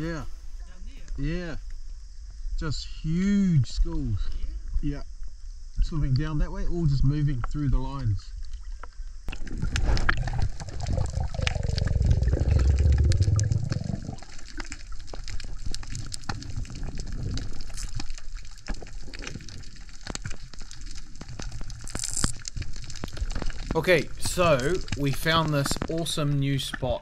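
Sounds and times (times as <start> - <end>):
low underwater rumble: 8.4 - 21.9
underwater crackling clicks: 8.4 - 26.9
water churning and bubbling: 8.5 - 25.0.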